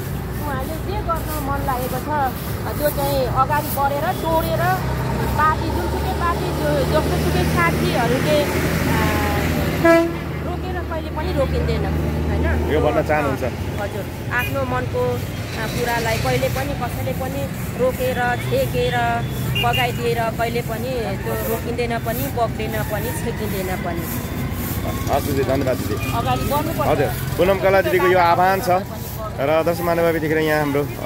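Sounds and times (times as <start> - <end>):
street traffic: 0.0 - 31.0
vehicle engine humming low: 0.0 - 31.0.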